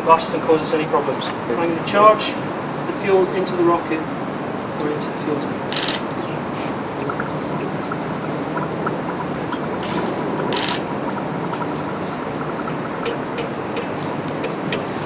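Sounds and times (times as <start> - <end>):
extraction fan rushing: 0.0 - 15.0
glassware and metal clicking: 12.7 - 15.0.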